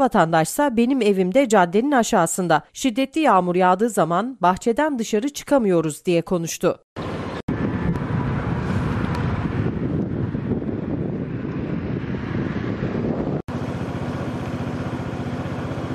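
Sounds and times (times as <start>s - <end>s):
wind on microphone: 7.0s - 13.5s
motor vehicle engine running: 7.0s - 15.9s.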